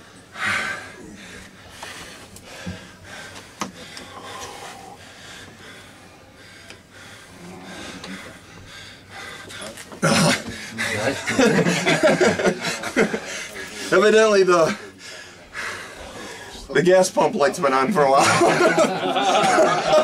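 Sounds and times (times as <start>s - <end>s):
men breathing heavily and panting: 0.0s - 20.0s.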